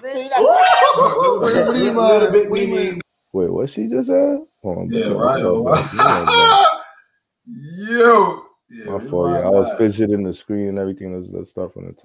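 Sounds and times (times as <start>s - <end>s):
wordless vocal hollers: 4.9s - 9.9s.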